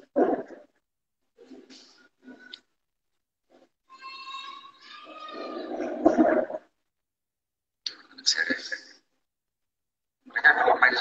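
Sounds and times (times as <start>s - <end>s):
high-pitched drawn-out cry: 3.9s - 5.9s.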